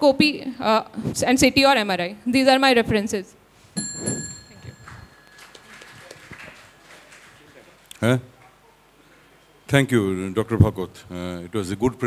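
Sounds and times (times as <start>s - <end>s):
faint room noise: 0.0s - 12.0s
knock with high metallic ring: 3.8s - 5.3s.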